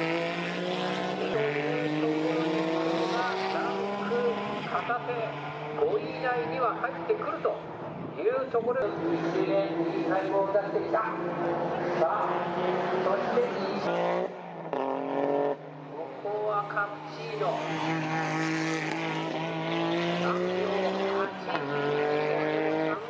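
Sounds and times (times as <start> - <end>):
race car engine at full throttle: 0.0 - 23.0.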